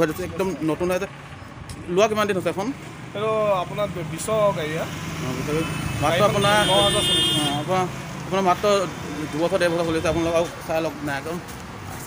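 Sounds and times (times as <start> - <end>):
men talking: 0.0 - 11.5.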